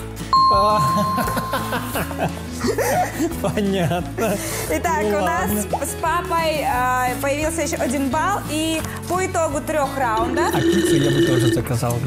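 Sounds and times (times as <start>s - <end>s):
background music: 0.0s - 12.0s
electronic beep tone: 0.4s - 1.7s, 10.5s - 11.6s
people laughing: 0.7s - 4.8s.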